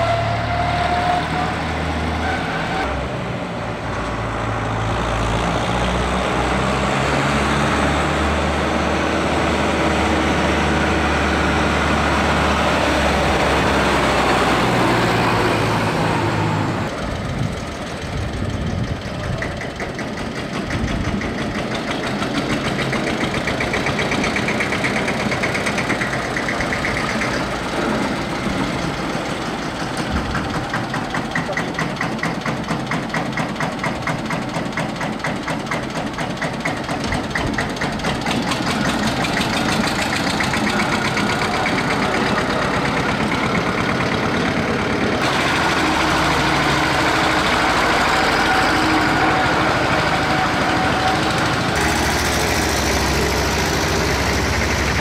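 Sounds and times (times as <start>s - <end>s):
tractor diesel engine knocking: 8.6s - 55.0s.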